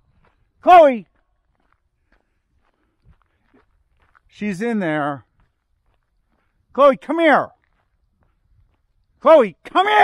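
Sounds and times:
faint footsteps on asphalt: 0:00.0 - 0:10.0.

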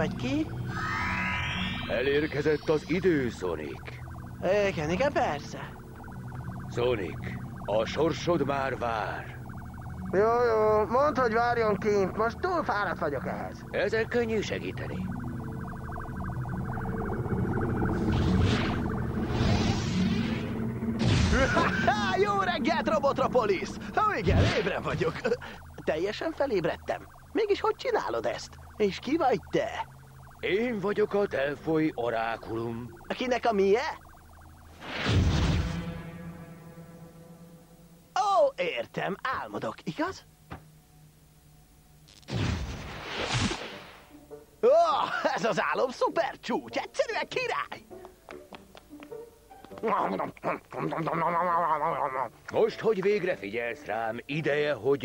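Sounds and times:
warbling electronic tone: 0:00.0 - 0:38.2
low sustained hum: 0:00.2 - 0:38.2
cartoon magic whoosh: 0:00.6 - 0:03.7, 0:16.0 - 0:22.2, 0:34.7 - 0:36.2, 0:42.3 - 0:44.0.

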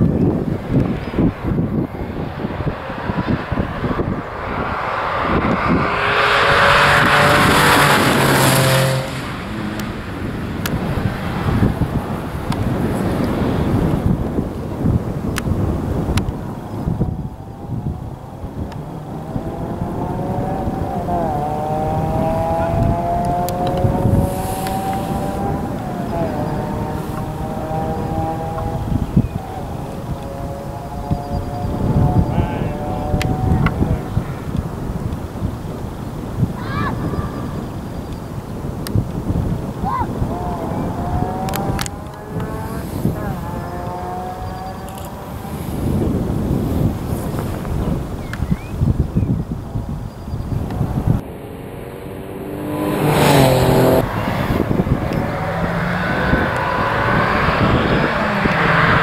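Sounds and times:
rally car engine passing: 0:00.0 - 0:38.0, 0:39.3 - 0:47.8, 0:50.8 - 0:59.0.

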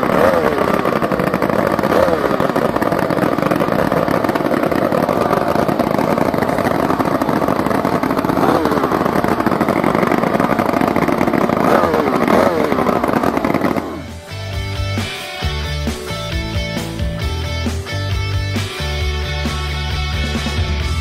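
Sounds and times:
outboard motor running loudly: 0:00.0 - 0:21.0.

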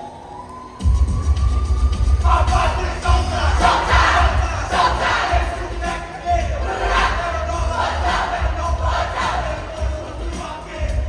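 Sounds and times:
bass-heavy backing track: 0:00.8 - 0:11.0
crowd shouting a chant: 0:02.2 - 0:11.0.

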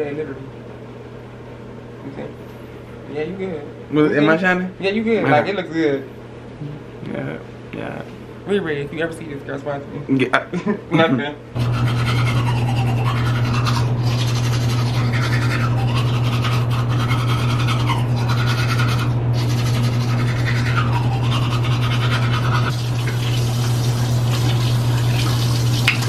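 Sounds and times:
steady low hum: 0:00.0 - 0:26.0
toothbrush scrubbing teeth: 0:11.6 - 0:26.0.

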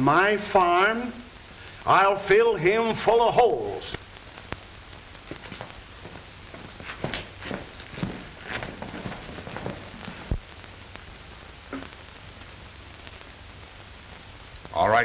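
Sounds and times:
film soundtrack hiss and hum: 0:00.0 - 0:15.0.

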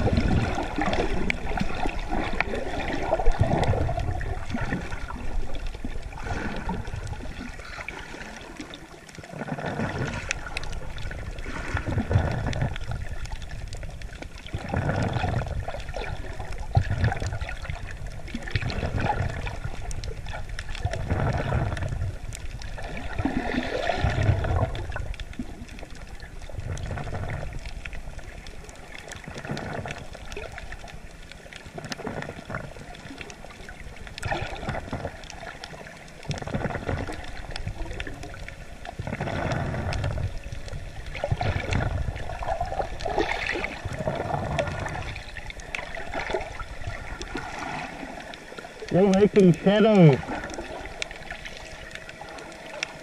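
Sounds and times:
water gurgling and sloshing: 0:00.0 - 0:53.0.

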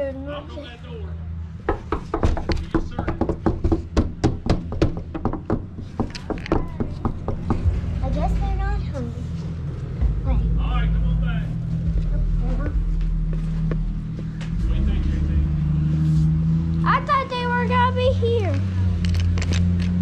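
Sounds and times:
rapid sharp taps: 0:01.7 - 0:07.6
low steady rumble: 0:03.5 - 0:20.0.

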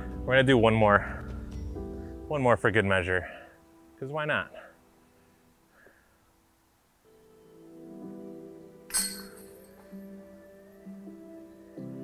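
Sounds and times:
melodic background music: 0:00.0 - 0:05.6, 0:07.0 - 0:12.0
disc striking metal chains: 0:08.9 - 0:10.0.

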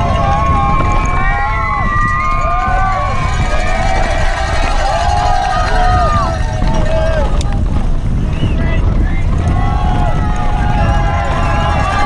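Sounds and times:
bike tyres rumbling on dirt: 0:00.0 - 0:12.0
spectators shouting and cheering: 0:00.0 - 0:12.0
wind buffeting microphone: 0:00.0 - 0:12.0.

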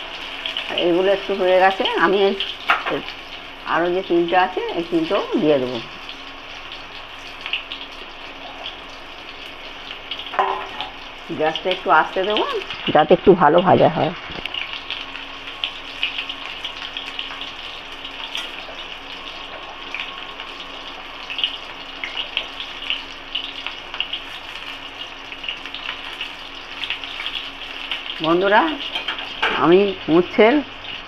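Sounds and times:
food sizzling in oil: 0:00.0 - 0:31.0.

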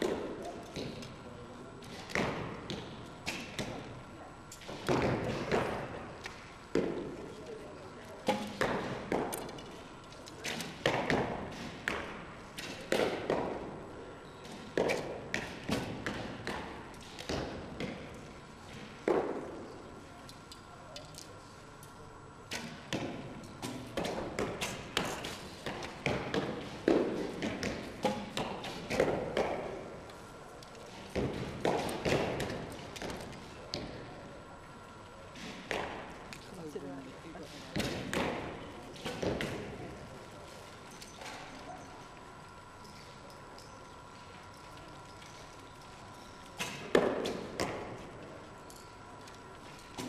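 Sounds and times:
arrows striking targets: 0:04.6 - 0:07.1, 0:08.2 - 0:09.8, 0:10.4 - 0:13.7, 0:22.5 - 0:29.8, 0:30.9 - 0:34.0, 0:35.3 - 0:36.4, 0:37.5 - 0:39.8, 0:46.6 - 0:48.2
arrow striking target: 0:08.2 - 0:09.3, 0:22.5 - 0:29.7, 0:46.6 - 0:47.9.

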